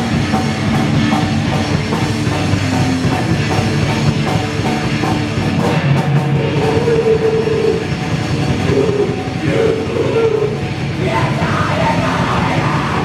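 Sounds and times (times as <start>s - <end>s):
distorted electric guitar: 0.0s - 13.0s
drum kit: 0.0s - 13.0s.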